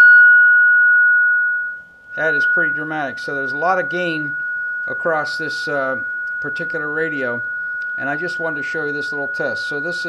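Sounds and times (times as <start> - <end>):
steady harsh beat tone: 2.1 - 10.0.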